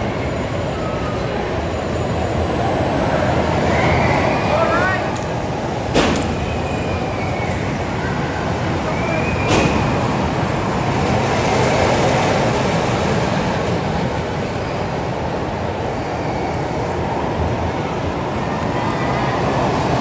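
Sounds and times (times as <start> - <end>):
crowd noise: 0.0 - 20.0
ride machinery rumbling: 0.0 - 20.0.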